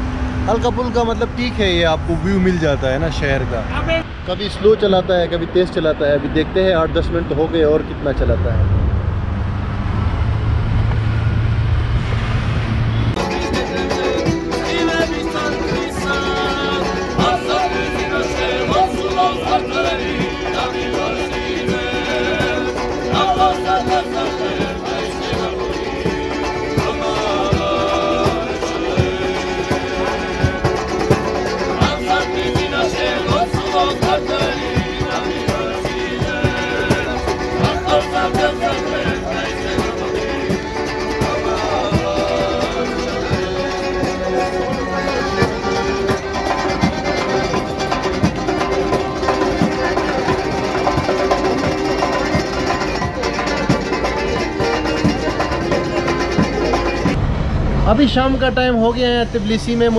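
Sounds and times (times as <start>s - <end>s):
plucked string instruments: 13.1s - 57.3s
accordion: 13.2s - 57.2s
frame drum beat: 13.2s - 57.2s.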